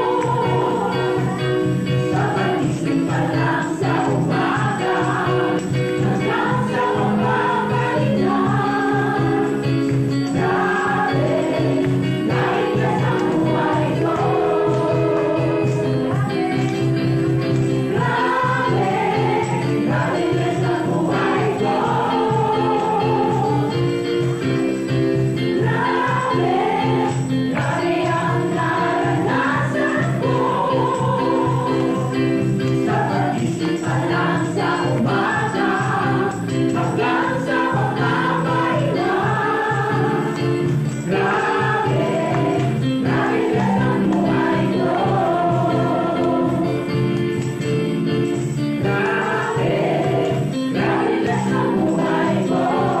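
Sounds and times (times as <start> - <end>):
instrumental accompaniment: 0.0 - 53.0
women's gospel choir singing: 0.0 - 53.0.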